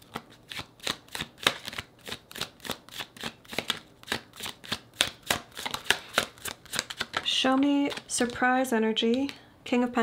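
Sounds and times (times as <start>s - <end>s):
cards shuffled by hand: 0.0s - 8.5s.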